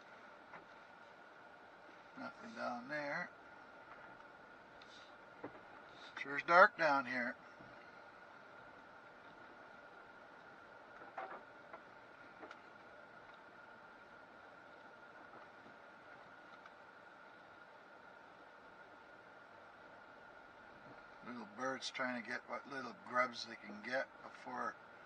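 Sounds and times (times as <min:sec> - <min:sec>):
faint high-pitched hum: 0:00.0 - 0:25.0.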